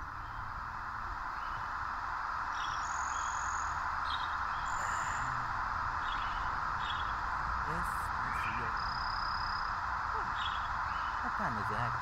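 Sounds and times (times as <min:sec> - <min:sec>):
birds chirping: 0:00.0 - 0:12.0
steady background hiss: 0:00.0 - 0:12.0.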